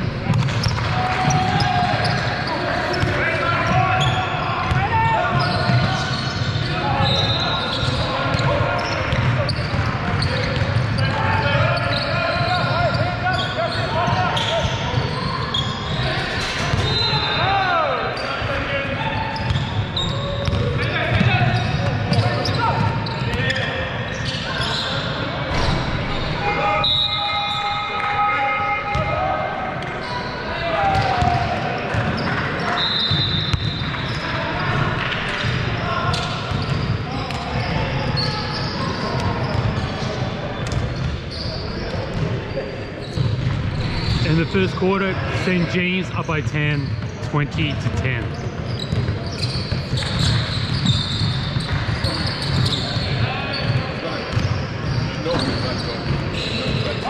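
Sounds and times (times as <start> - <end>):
players calling out: 0.3 - 57.0.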